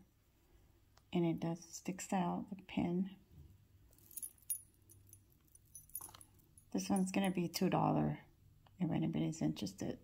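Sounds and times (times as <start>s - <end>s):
metal jewelry clinking: 3.9s - 7.5s.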